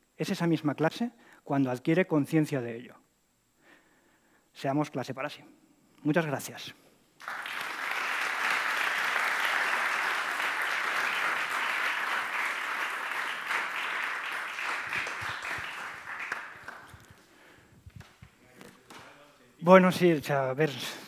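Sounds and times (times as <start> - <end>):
audience applauding: 7.2 - 17.3.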